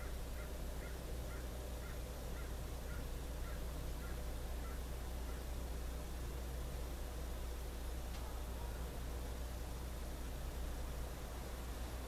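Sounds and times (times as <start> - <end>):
faint bird calls: 0.0 - 5.7
low hum and hiss: 0.0 - 12.0.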